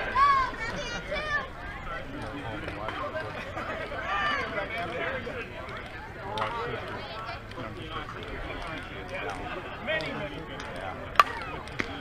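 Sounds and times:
faint chatter: 0.0s - 12.0s
bat cracking ball: 11.1s - 12.0s.

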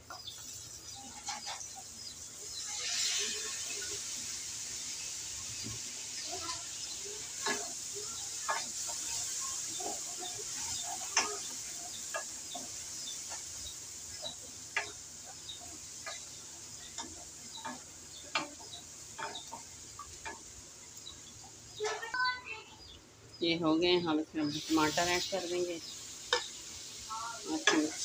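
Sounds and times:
vegetables sizzling in oil: 0.0s - 28.0s.

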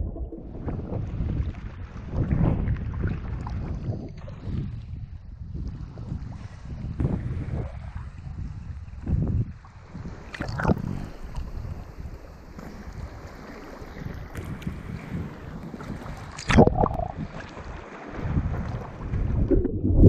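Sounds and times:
low rumble: 0.0s - 1.8s, 19.0s - 20.0s
water sloshing and splashing: 9.6s - 20.0s.

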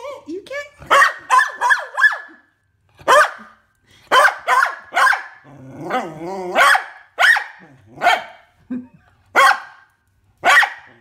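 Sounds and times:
puppy barking: 0.9s - 8.4s, 9.4s - 11.0s.

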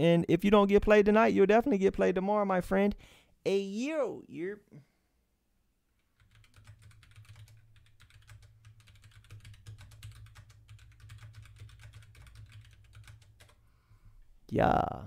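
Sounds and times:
rapid keyboard typing: 6.0s - 13.6s.

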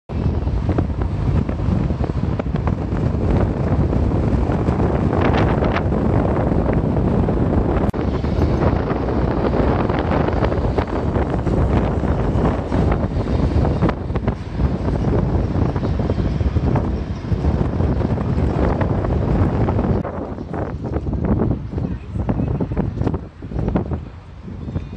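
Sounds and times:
car and road noise: 0.1s - 24.9s
wind buffeting microphone: 0.1s - 24.9s.

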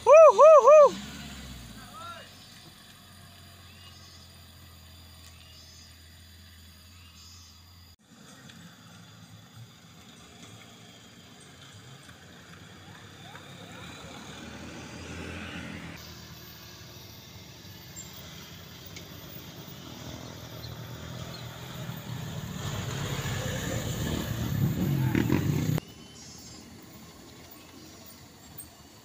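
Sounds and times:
bus engine approaching: 0.0s - 29.0s
truck diesel engine running: 7.7s - 29.0s.

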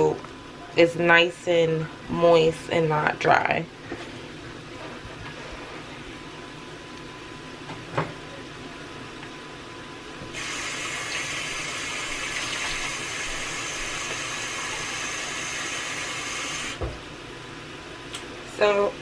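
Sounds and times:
tap water running into bowl: 10.4s - 15.3s
tap shutting off thump: 16.8s - 17.0s.

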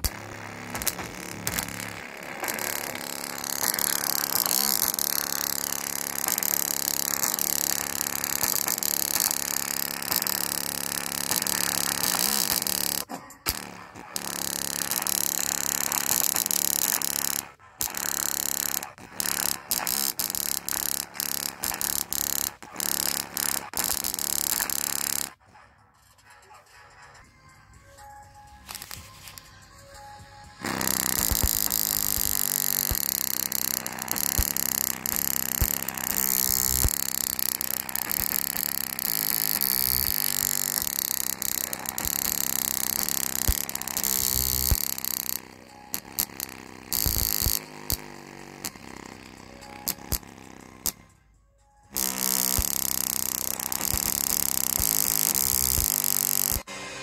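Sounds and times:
loud music through small speaker: 25.5s - 30.8s.

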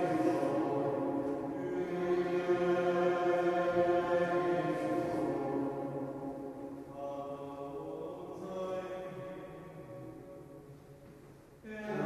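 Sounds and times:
congregation chanting long notes: 0.0s - 10.8s, 11.6s - 12.0s.

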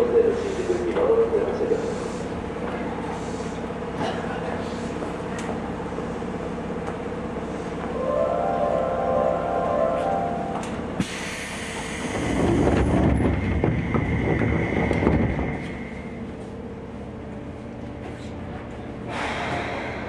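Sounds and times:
train doors closing rumble: 9.7s - 16.6s, 17.9s - 20.0s.

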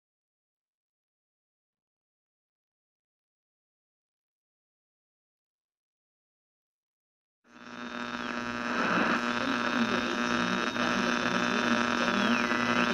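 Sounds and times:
electrical hum and buzz: 7.5s - 12.9s.

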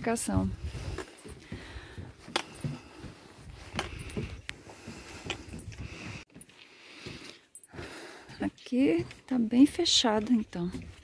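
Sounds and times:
footsteps on wooden boardwalk: 0.0s - 11.0s.

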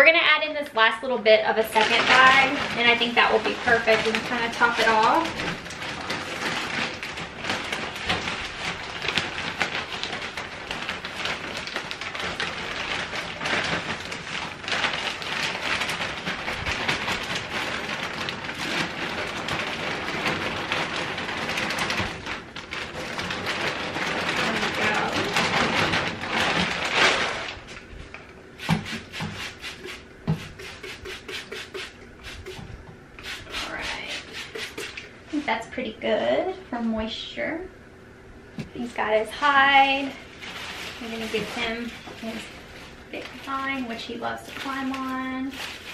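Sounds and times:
plastic bag crinkling: 1.5s - 35.4s, 38.6s - 45.9s
substrate pouring rustling hiss: 28.6s - 35.1s.

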